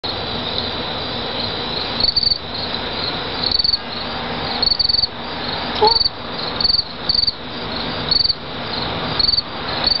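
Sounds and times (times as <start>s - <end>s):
crickets chirping: 0.1s - 10.0s
steady high insect tone: 0.1s - 10.0s.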